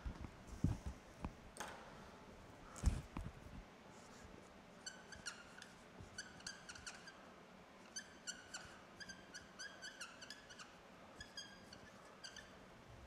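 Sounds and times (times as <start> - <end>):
marker squeaking on whiteboard: 4.8 - 12.6.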